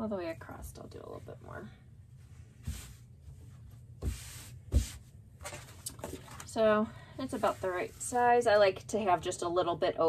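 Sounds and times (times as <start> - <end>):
fabric rustling on cutting mat: 0.4 - 8.7.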